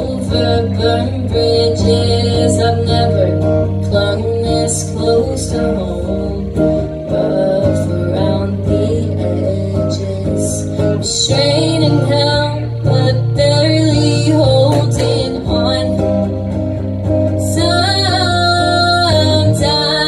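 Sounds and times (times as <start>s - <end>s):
electric guitar strummed chords: 0.0s - 20.0s.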